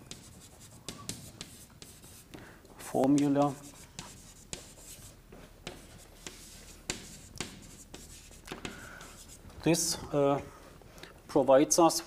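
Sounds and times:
chalk tapping and scraping: 0:00.0 - 0:09.6.

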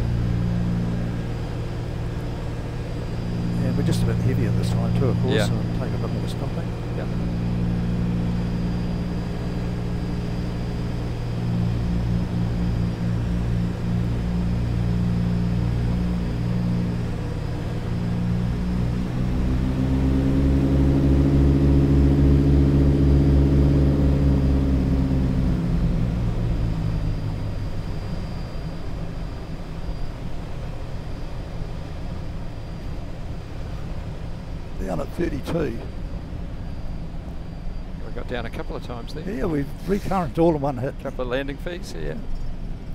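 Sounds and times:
piston aircraft engines: 0:00.0 - 0:42.9
crew talking: 0:39.2 - 0:42.2.

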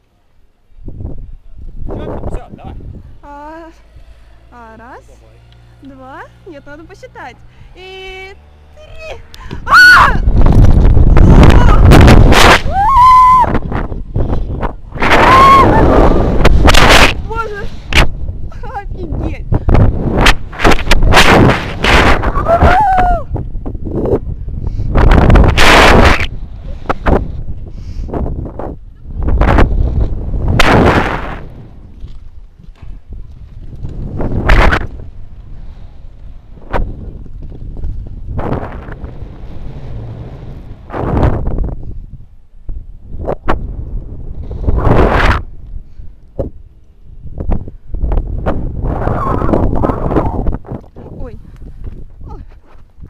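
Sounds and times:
wind gusts on microphone: 0:00.7 - 0:53.0.

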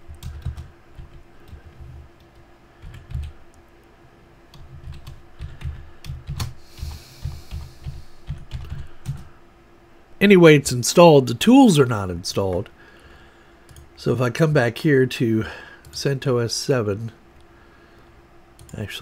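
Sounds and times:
faint steady hum: 0:00.0 - 0:19.0
computer keyboard keystrokes: 0:00.1 - 0:01.6, 0:02.2 - 0:03.4, 0:04.5 - 0:09.3, 0:13.7 - 0:13.9.

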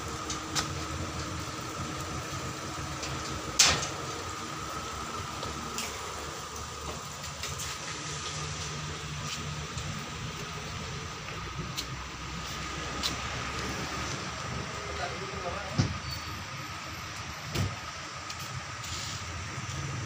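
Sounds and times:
background hum and hiss: 0:00.0 - 0:20.0.

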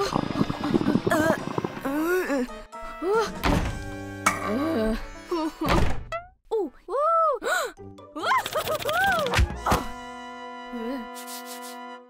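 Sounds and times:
background music: 0:00.0 - 0:06.7, 0:07.4 - 0:12.0.

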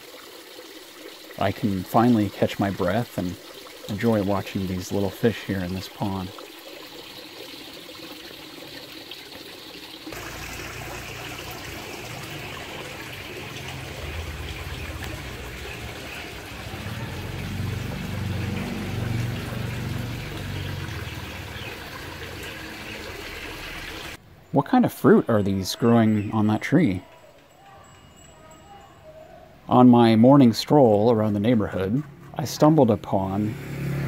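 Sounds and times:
water trickling into pond: 0:00.0 - 0:34.0
low outdoor rumble: 0:10.2 - 0:22.0.

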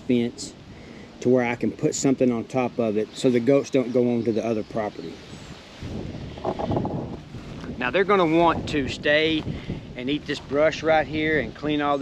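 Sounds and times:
leafy brush rustling: 0:00.0 - 0:12.0
wind rumbling on microphone: 0:04.6 - 0:12.0.

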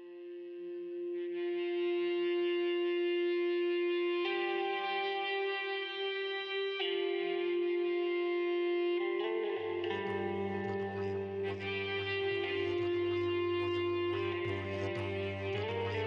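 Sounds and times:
sustained chords with echo: 0:09.7 - 0:16.0.

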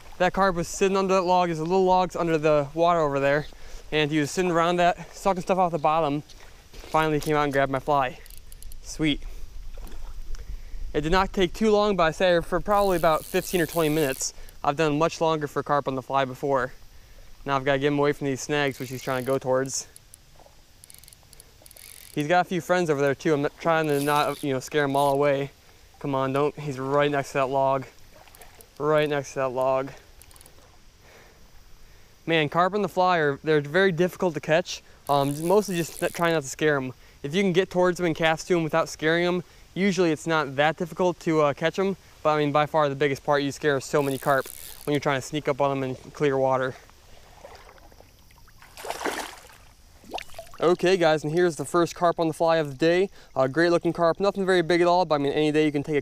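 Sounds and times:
fly reel ticking: 0:00.8 - 0:09.3, 0:11.6 - 0:15.4, 0:16.2 - 0:25.6, 0:26.2 - 0:31.8, 0:34.1 - 0:37.5, 0:43.5 - 0:45.9
water splash: 0:47.1 - 0:50.8.

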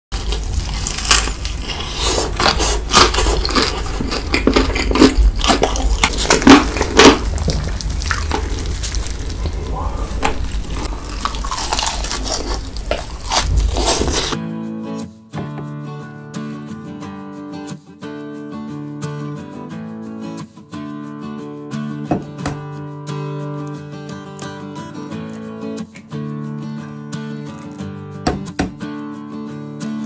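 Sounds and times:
crunching and chewing food: 0:00.1 - 0:14.4, 0:27.5 - 0:27.9
wet mouth sounds: 0:00.2 - 0:14.4.

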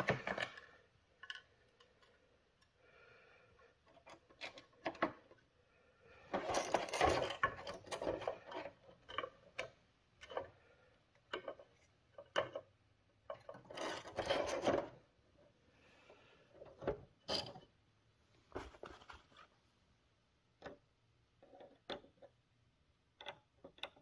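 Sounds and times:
plastic rubbing and scraping: 0:06.2 - 0:09.6, 0:13.3 - 0:15.1
plastic clicks and knocks: 0:23.2 - 0:24.0.

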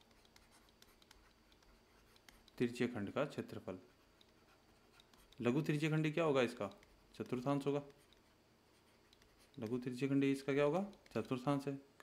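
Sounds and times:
stylus writing on tablet screen: 0:00.0 - 0:11.8.

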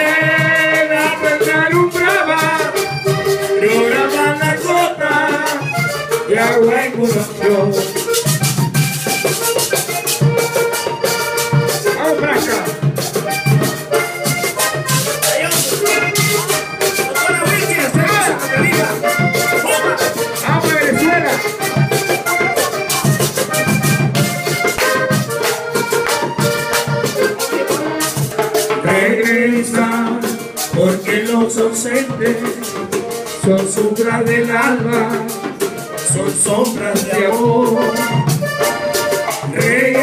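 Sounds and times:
button accordion melody: 0:00.0 - 0:40.0
metal scraper rhythm: 0:01.6 - 0:30.0.

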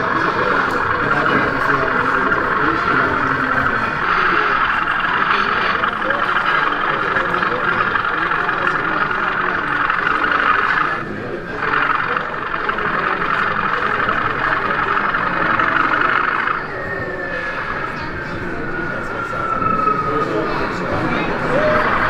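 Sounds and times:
hubbub of many people talking: 0:00.0 - 0:22.0.

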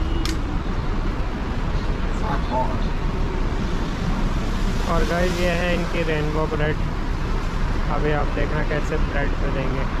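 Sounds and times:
street traffic rumble: 0:00.0 - 0:10.0
sharp click: 0:00.2 - 0:00.5.

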